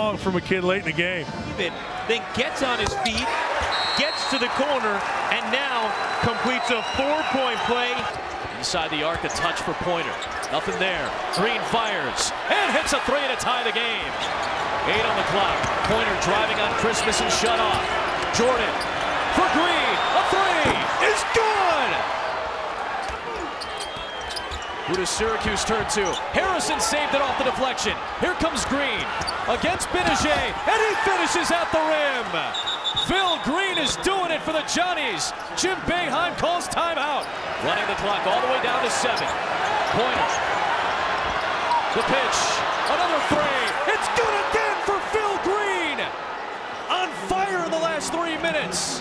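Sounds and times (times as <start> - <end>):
arena crowd noise: 0.0 - 49.0
arena crowd murmur: 1.2 - 23.9
commentator exclaiming: 19.4 - 22.1, 43.2 - 46.1.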